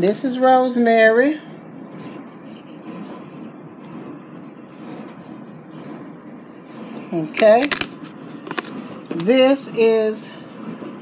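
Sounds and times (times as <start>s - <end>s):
low steady hum-like rush: 0.0s - 11.0s.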